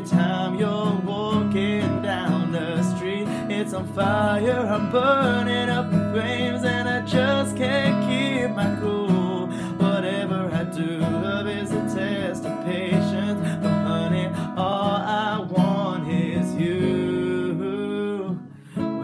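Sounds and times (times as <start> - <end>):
acoustic guitar: 0.0 - 19.0
man singing: 0.0 - 19.0.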